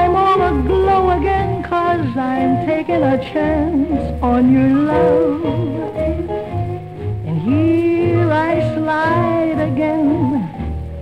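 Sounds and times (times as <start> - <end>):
woman singing: 0.0 - 6.5, 7.3 - 10.6
jazz band playing: 0.0 - 11.0.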